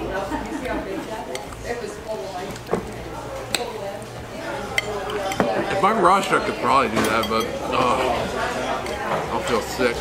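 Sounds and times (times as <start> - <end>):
murmur of voices: 0.0 - 10.0
spoons clinking against glass: 4.7 - 5.6, 6.9 - 8.0.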